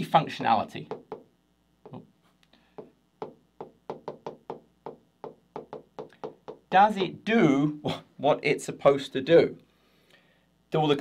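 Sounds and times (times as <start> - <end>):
stylus tapping on glass screen: 0.8 - 2.0, 2.7 - 7.2.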